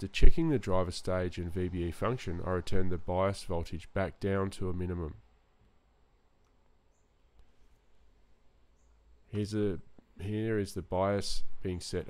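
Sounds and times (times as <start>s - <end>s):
man narrating: 0.0s - 5.2s, 9.3s - 12.0s
faint clicks: 6.4s - 7.6s.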